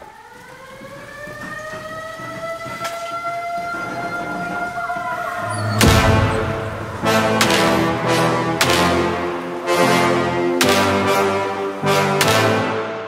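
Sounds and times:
rising siren-like tone: 0.0s - 8.6s
sharp hit: 5.4s - 9.3s.

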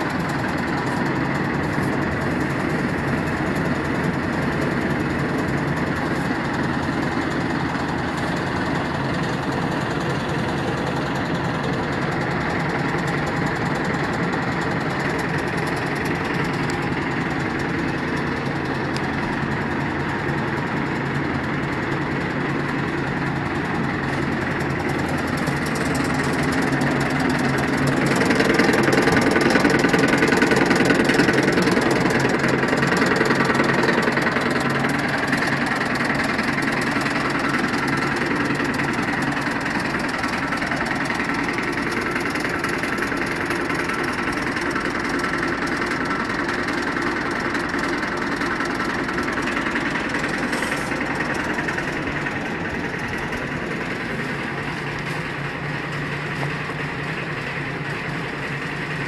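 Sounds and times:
machine humming: 0.0s - 59.0s.

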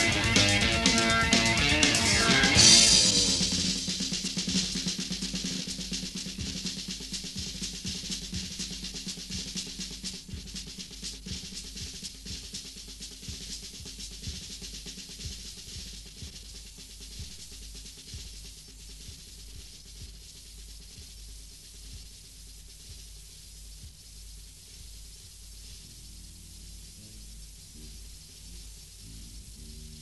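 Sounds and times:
low drum beats: 0.0s - 30.0s
snare and cymbal: 0.0s - 30.0s
held low note: 25.8s - 30.0s.

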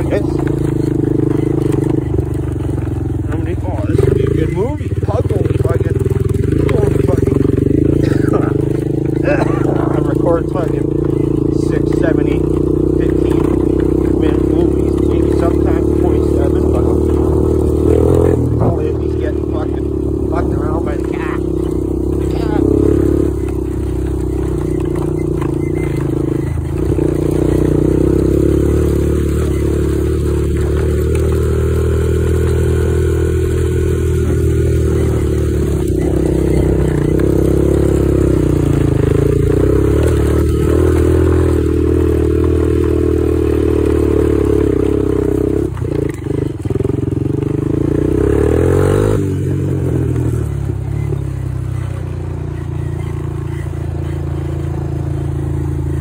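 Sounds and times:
quad bike engine revving: 0.0s - 56.0s.

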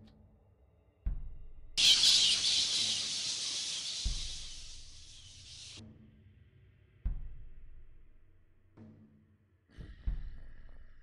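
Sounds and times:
rising swell: 1.8s - 5.8s.

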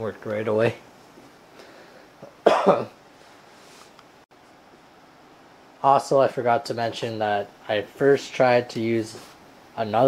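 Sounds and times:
faint background hiss: 0.0s - 10.0s
man coughing: 2.3s - 3.0s.

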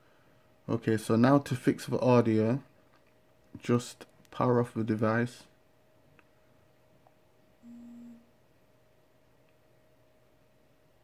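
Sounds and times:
phone vibration buzz: 7.6s - 8.3s.

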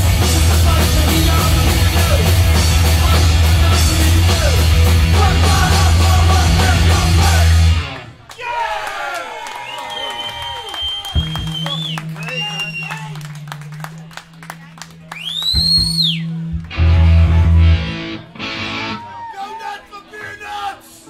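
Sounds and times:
full-band hit: 0.0s - 8.0s
loud punk band playing: 0.0s - 8.1s, 11.2s - 14.2s, 15.2s - 19.3s
people shouting: 8.3s - 9.6s, 18.9s - 21.0s
high whistle: 9.6s - 13.2s, 15.1s - 16.4s.

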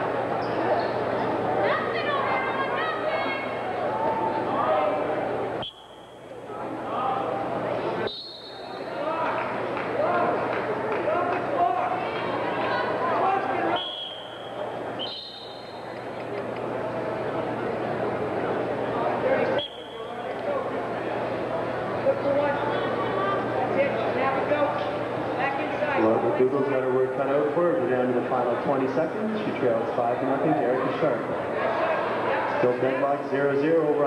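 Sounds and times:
spectators talking and calling out: 0.0s - 34.0s.

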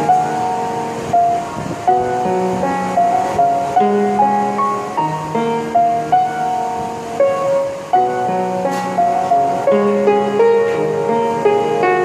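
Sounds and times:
music with held chords: 0.0s - 12.0s.

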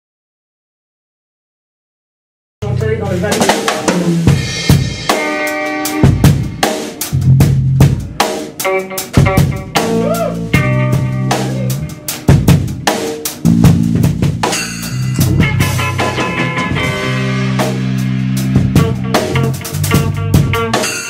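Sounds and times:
bass guitar notes: 2.6s - 21.0s
drum kit playing: 2.6s - 21.0s
electric guitar notes: 4.0s - 21.0s.

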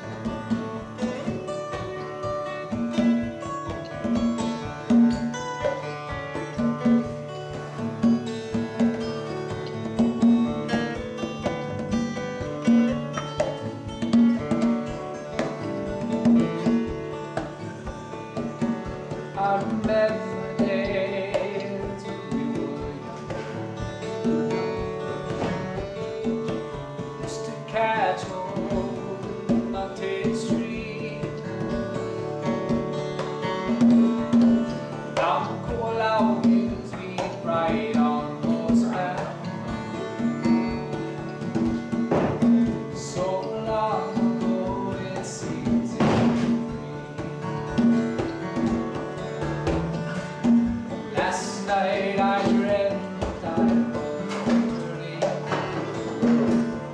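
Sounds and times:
man singing: 0.0s - 5.4s, 14.3s - 32.6s, 33.7s - 41.2s, 42.4s - 47.2s, 50.9s - 56.9s
acoustic guitar strumming: 0.0s - 56.9s
conga drum played by hand: 0.0s - 56.9s.

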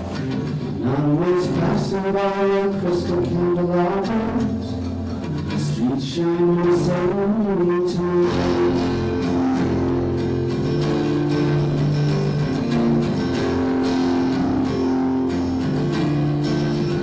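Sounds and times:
acoustic guitar chords: 0.0s - 17.0s.

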